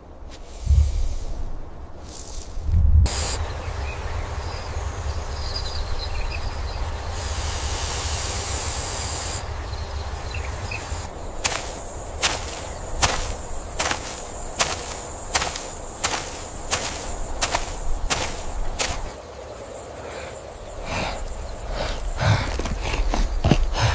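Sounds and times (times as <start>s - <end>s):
low wind-like rumble: 0.0s - 23.9s
bright hiss: 3.1s - 3.8s, 6.8s - 9.6s.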